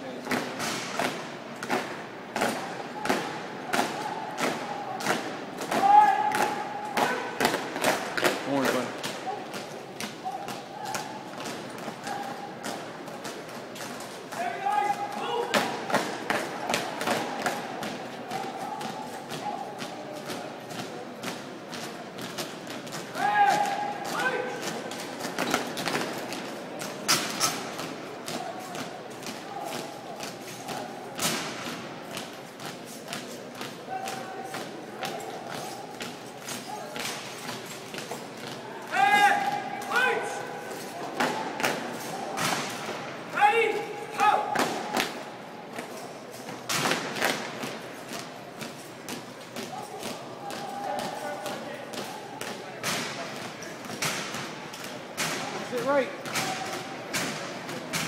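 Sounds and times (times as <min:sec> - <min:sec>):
shouted drill commands: 0:38.9 - 0:40.4.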